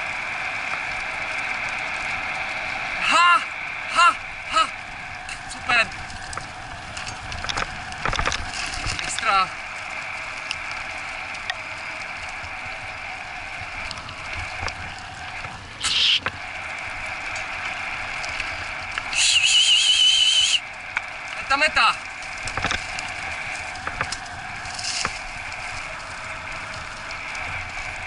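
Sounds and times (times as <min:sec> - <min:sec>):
cart wheels rolling on dirt: 0:00.0 - 0:28.0.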